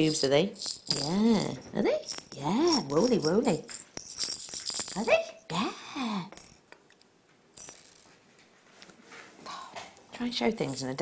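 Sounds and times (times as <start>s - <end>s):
metal beads clinking: 0.0s - 8.2s, 10.4s - 11.0s.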